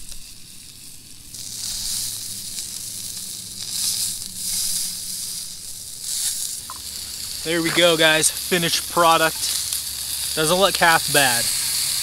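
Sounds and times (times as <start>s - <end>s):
fish sizzling in a skillet: 0.0s - 12.0s.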